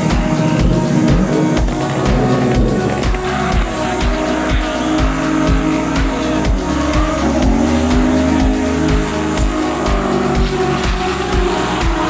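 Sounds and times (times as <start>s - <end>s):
car engines running hard: 0.0s - 12.0s
music with steady beat: 0.0s - 12.0s.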